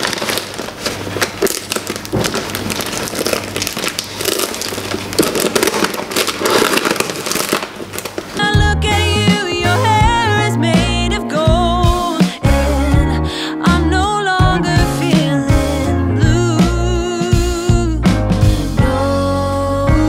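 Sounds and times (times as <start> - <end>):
paper wrapping crinkling: 0.0 - 9.6
background music with singing: 8.4 - 20.0.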